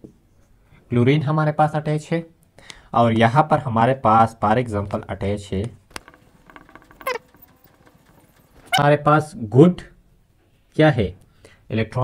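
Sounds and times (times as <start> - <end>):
marker squeak: 6.8 - 7.4.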